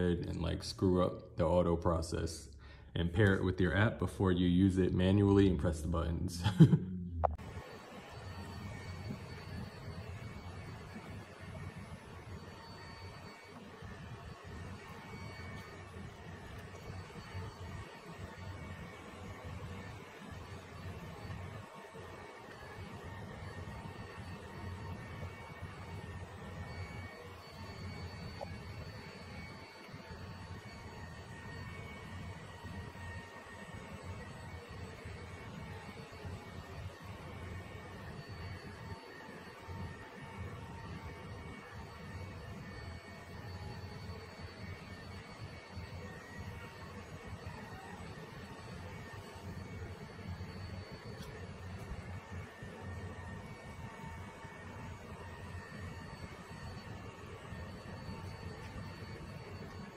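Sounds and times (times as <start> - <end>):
faint high whine: 0.0 - 59.9.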